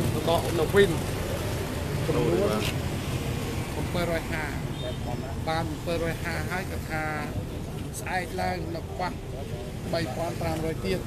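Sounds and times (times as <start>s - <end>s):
man speaking: 2.0s - 2.8s.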